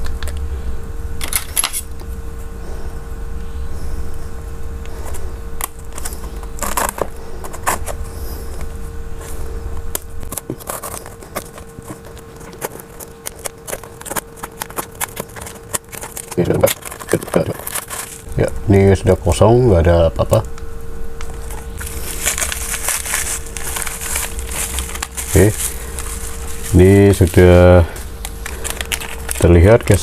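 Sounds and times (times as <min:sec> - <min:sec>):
faint steady hum: 0:00.0 - 0:30.0
packaging crinkling and clicking: 0:04.8 - 0:08.0, 0:09.9 - 0:18.3, 0:21.2 - 0:30.0
bubble wrap rustling: 0:04.8 - 0:19.4, 0:21.2 - 0:30.0
cardboard box being opened: 0:10.3 - 0:18.2, 0:21.8 - 0:27.4.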